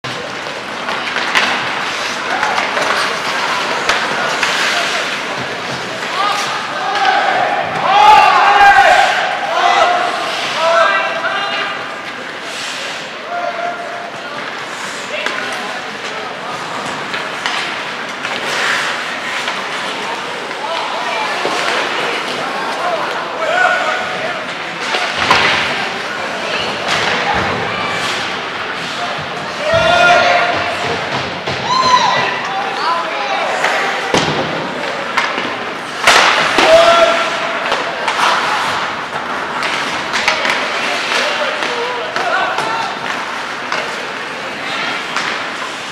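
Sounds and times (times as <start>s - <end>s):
skates and sticks on ice: 0.0s - 45.9s.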